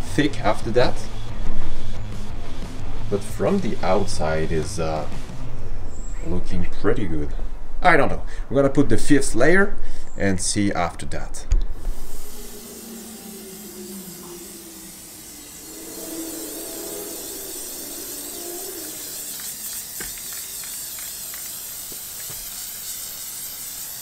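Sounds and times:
aerosol can spraying: 11.8 - 24.0.

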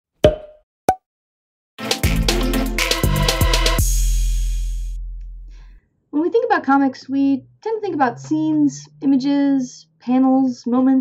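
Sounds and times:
cartoon pop sound effects: 0.2 - 1.0
upbeat intro music with drums: 1.8 - 5.4.

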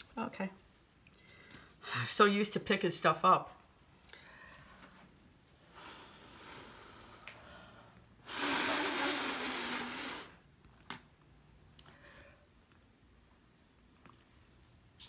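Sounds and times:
person blowing by mouth: 8.2 - 10.4.

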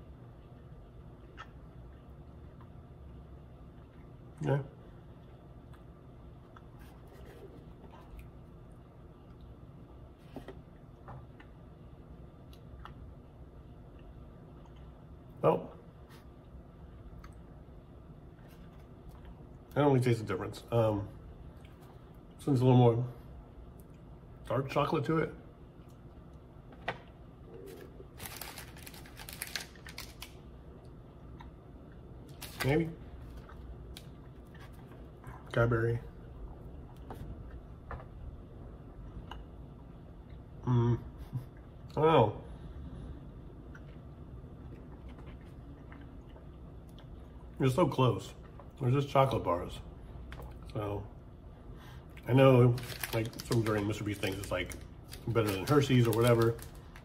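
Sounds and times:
low room hum: 0.0 - 57.0
man chewing: 0.4 - 4.2, 43.5 - 47.6.

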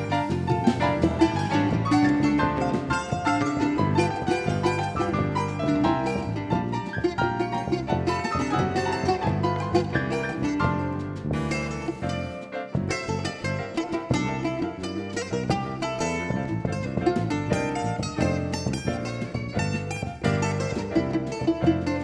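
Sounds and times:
electric bass: 0.0 - 22.0
plucked acoustic guitar: 0.0 - 22.0.

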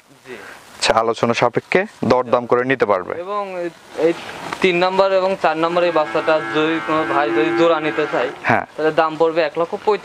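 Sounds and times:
cow mooing: 5.6 - 8.5.

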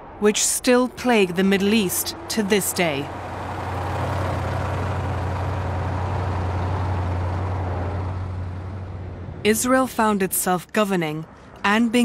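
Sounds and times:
heavy trucks driving past: 0.0 - 10.1.

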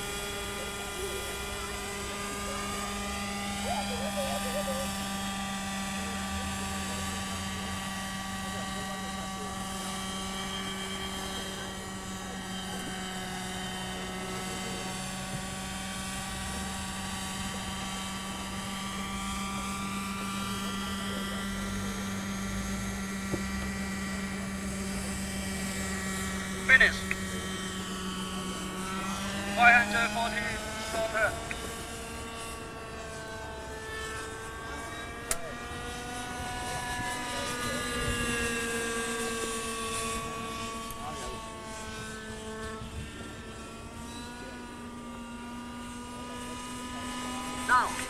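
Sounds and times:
model helicopter engine and rotors: 0.0 - 48.0.

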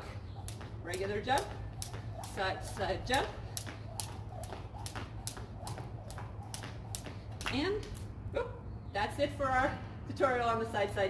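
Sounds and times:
jump rope slapping concrete: 0.0 - 8.1
steady low hum: 0.0 - 10.2.

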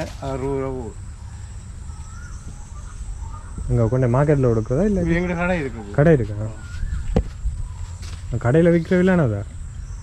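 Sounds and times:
man talking: 0.0 - 1.0, 3.6 - 6.7, 8.3 - 9.5
faint bird chirps: 0.0 - 10.0
high insect drone: 0.0 - 10.0.

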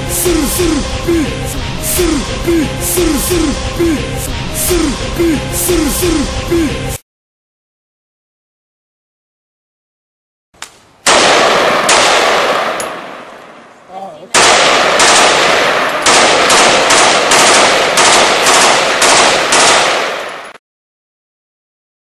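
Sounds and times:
gunshots: 11.0 - 20.6
rapid gunfire: 11.1 - 13.3, 14.4 - 20.6.

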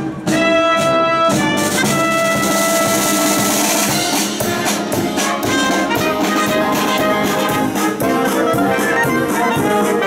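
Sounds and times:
bass drum: 0.0 - 10.0
cymbals: 0.0 - 10.0
marching band playing: 0.0 - 10.0
snare drum: 0.0 - 10.0
brass sustained notes: 0.2 - 10.0.

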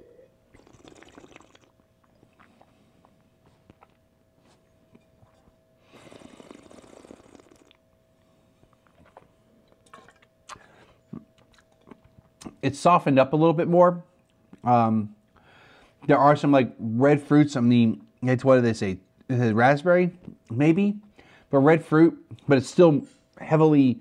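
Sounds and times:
faint steady hum: 0.0 - 24.0
wine sipped noisily: 0.5 - 3.0, 5.3 - 7.8.

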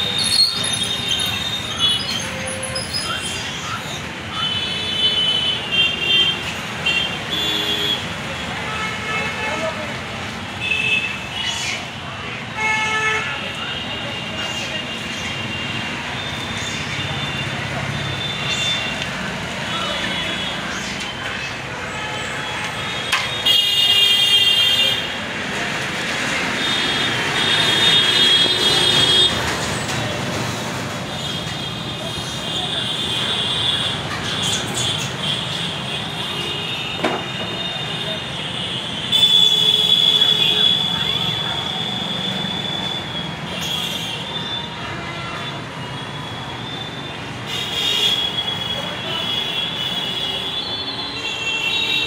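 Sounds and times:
road traffic noise: 0.0 - 52.0.

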